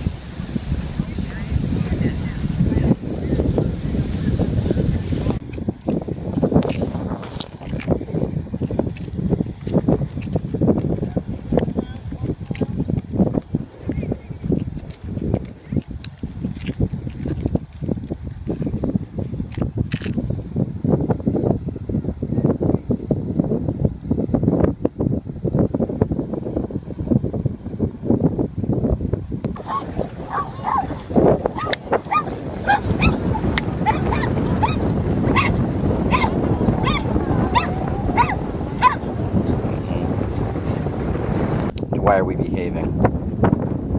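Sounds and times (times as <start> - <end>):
wind rumble on microphone: 0.0 - 43.9.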